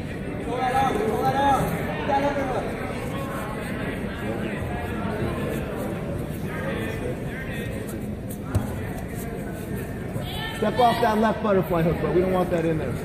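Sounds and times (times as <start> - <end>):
crowd chatter echoing: 0.0 - 13.0.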